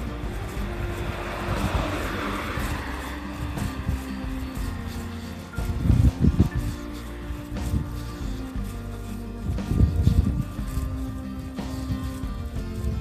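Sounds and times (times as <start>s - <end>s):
car passing: 0.0s - 8.0s
soft background music: 0.0s - 13.0s.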